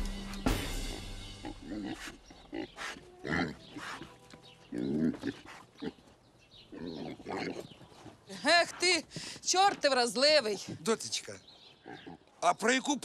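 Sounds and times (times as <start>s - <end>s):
pig grunting: 1.4s - 6.0s, 6.7s - 7.8s, 11.8s - 12.3s.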